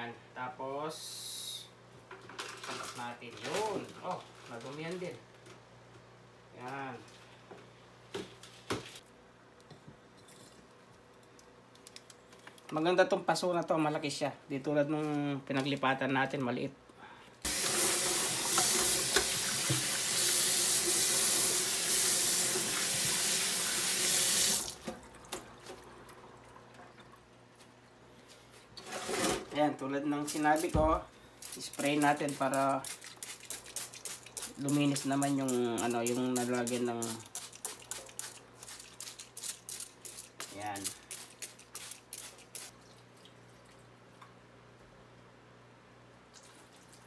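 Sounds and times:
faucet running into sink: 0:17.5 - 0:25.4
spray bottle squirting: 0:31.4 - 0:42.8.

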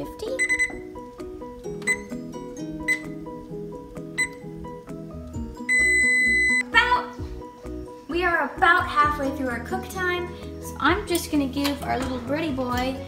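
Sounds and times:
background music: 0:00.0 - 0:13.0
short key beeps: 0:00.4 - 0:00.8, 0:01.9 - 0:02.1, 0:04.2 - 0:04.4, 0:05.7 - 0:06.6
long steady beep: 0:05.6 - 0:06.6.

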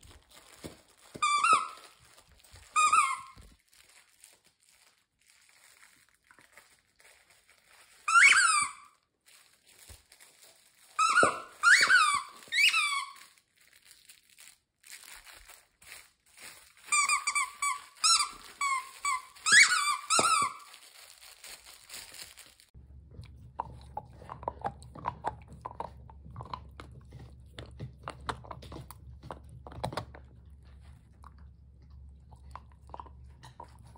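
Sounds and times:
squeaky toy squeaks: 0:01.1 - 0:02.0, 0:02.6 - 0:03.5, 0:08.0 - 0:09.0, 0:11.0 - 0:13.4, 0:16.8 - 0:21.6
dog chewing: 0:22.8 - 0:33.9.

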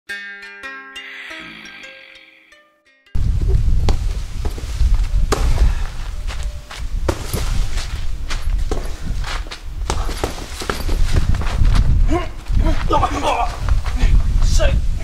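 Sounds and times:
scuffing footsteps: 0:03.4 - 0:14.2
punching bag thuds: 0:05.3 - 0:05.8, 0:07.1 - 0:07.6.

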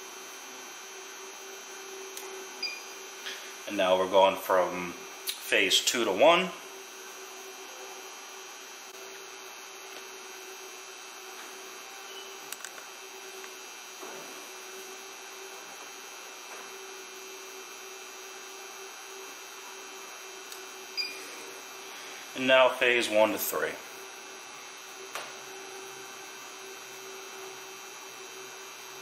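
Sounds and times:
steady electrical hum: 0:00.0 - 0:29.0.

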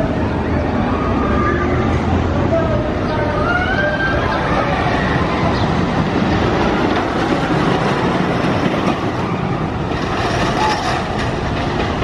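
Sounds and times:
roller coaster rumbling on track: 0:00.0 - 0:12.0
wheels clacking rapidly: 0:05.9 - 0:12.0.

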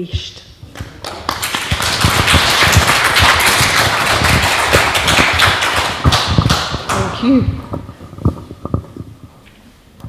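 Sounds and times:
audience applauding: 0:00.8 - 0:07.2.

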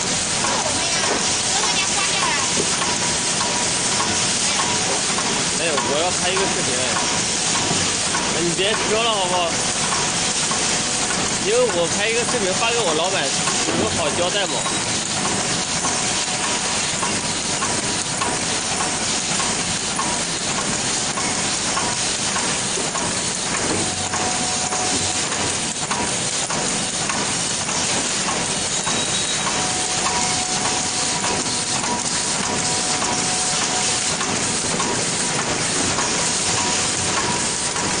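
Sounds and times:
machine clattering: 0:00.0 - 0:38.0.

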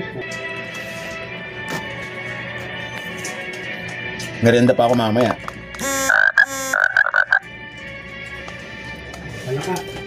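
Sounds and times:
phone text alert chirps: 0:05.8 - 0:07.4.

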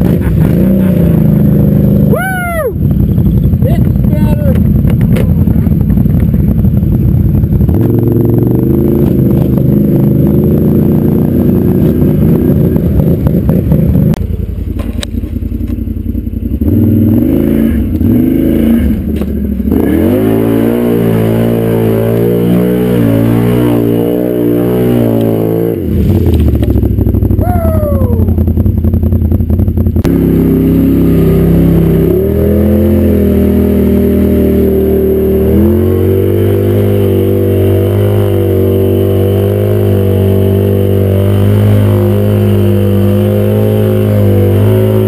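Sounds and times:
atv engine revving: 0:00.0 - 0:45.0.

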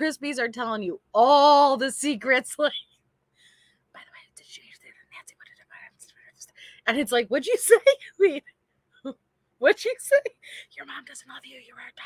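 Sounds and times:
woman whispering: 0:04.0 - 0:06.9, 0:10.1 - 0:12.0.

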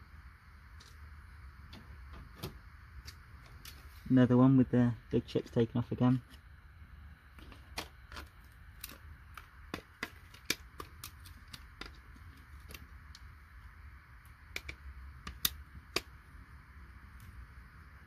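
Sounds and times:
chips snapping off circuit board: 0:07.4 - 0:12.0, 0:14.5 - 0:16.1.

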